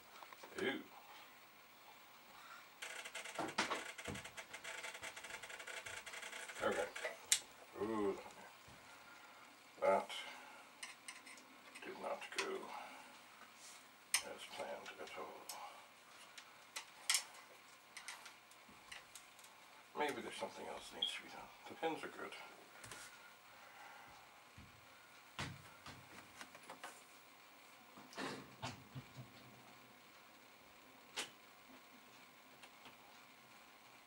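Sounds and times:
steady hiss with faint tones: 0:00.0 - 0:34.0
man murmuring: 0:07.8 - 0:08.3.

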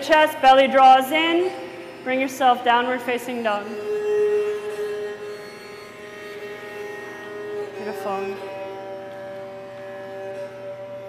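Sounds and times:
string instrument drone: 0:00.0 - 0:11.0.

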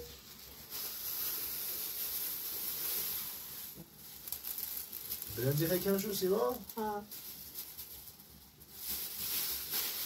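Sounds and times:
plastic bag rustling: 0:00.0 - 0:10.0
dry food pouring onto metal tray: 0:00.7 - 0:06.7.

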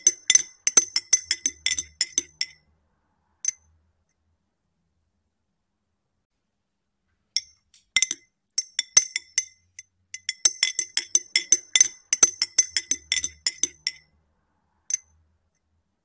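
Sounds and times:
teaspoon clinking against glass: 0:00.0 - 0:02.6, 0:07.4 - 0:14.0.

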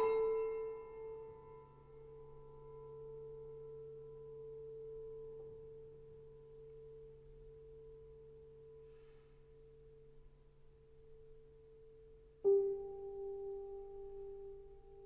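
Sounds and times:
soft piano note: 0:00.0 - 0:05.7.

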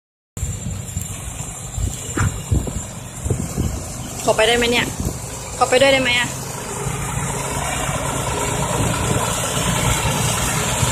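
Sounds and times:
diesel truck engine rumbling: 0:00.4 - 0:10.9.

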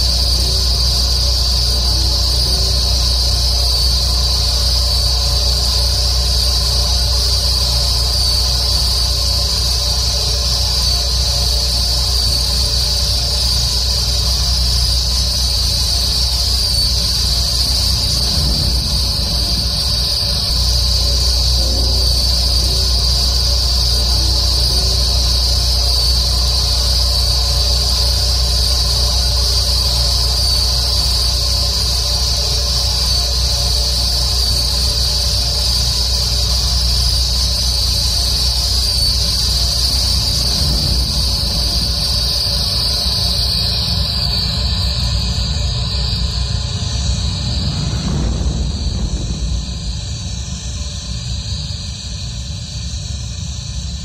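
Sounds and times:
insects chirring: 0:00.0 - 0:54.0
low hum: 0:00.0 - 0:54.0.

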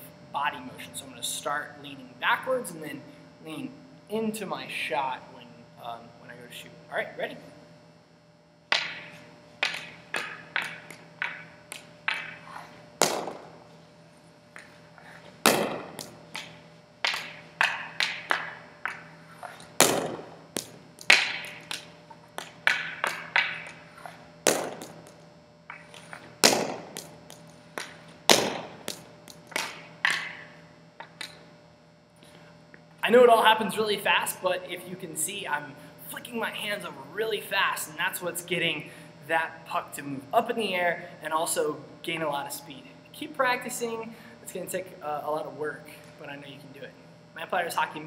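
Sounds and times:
hockey stick tapping puck: 0:08.7 - 0:13.6, 0:15.4 - 0:31.4
hockey shot cracking in gym: 0:08.7 - 0:13.7, 0:15.4 - 0:31.4.

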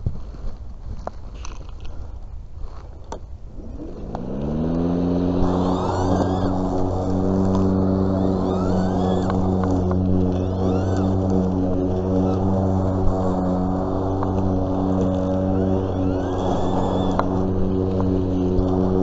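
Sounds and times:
handling clicks and rustling: 0:00.0 - 0:19.0
electric lawn mower motor humming: 0:03.5 - 0:19.0.

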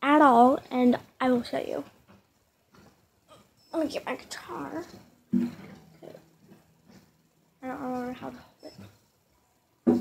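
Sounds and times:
knock on acoustic guitar: 0:05.3 - 0:05.9.

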